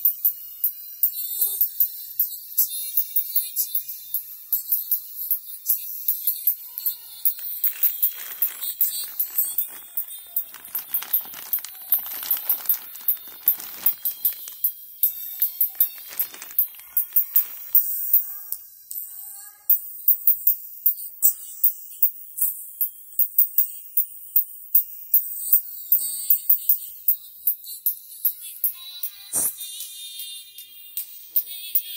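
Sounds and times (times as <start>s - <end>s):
thin trebly music: 4.6s - 19.2s
plastic bag rustling: 6.8s - 18.4s.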